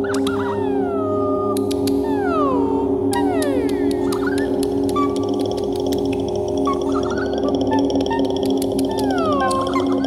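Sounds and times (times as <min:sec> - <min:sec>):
fast high-pitched ticking: 0:03.1 - 0:10.0.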